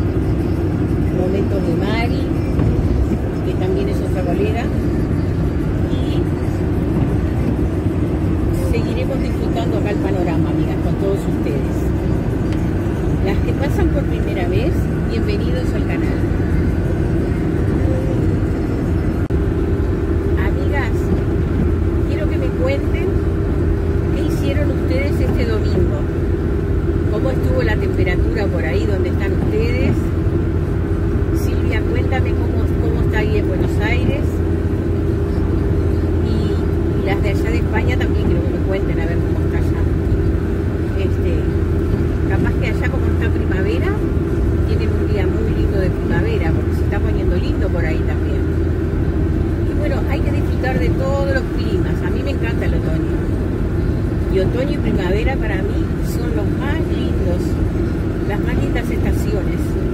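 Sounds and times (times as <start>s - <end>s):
road and engine noise in a car: 0.0s - 59.9s.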